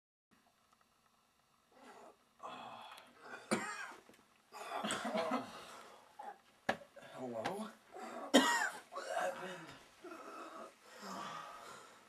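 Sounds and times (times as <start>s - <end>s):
person coughing: 3.3s - 4.0s, 8.3s - 9.6s.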